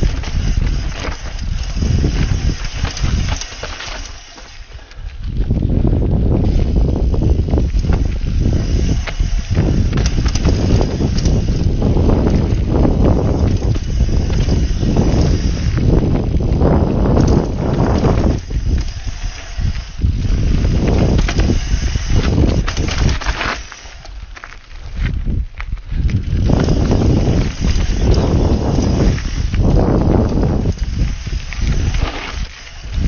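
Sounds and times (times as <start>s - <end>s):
bike knocking and rattling: 0.0s - 33.0s
tyres on dirt and stones: 0.0s - 33.0s
wind rumble on microphone: 0.0s - 33.0s.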